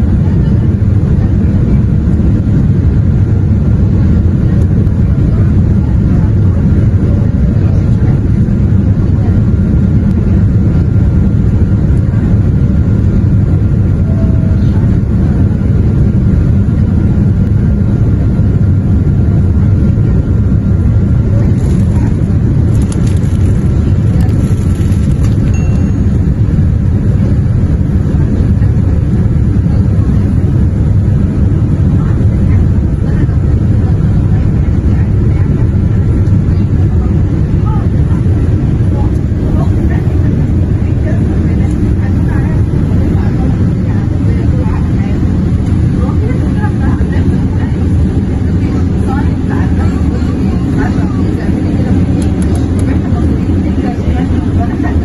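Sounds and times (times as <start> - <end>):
faint steady whine: 0.0 - 55.0
jet engines rumbling: 0.0 - 55.0.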